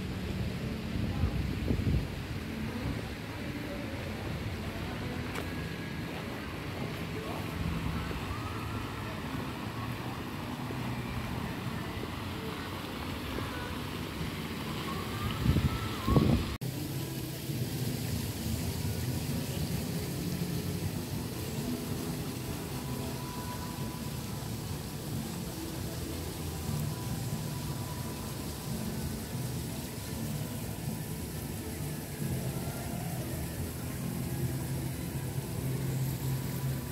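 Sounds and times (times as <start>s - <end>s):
wind buffeting microphone: 15.3s - 16.6s.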